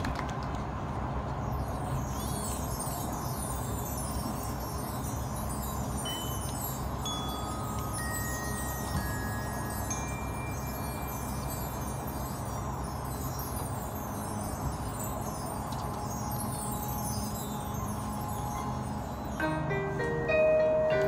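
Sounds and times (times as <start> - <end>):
chimes shimmering: 1.4 - 21.0
mallet percussion notes: 1.6 - 21.0.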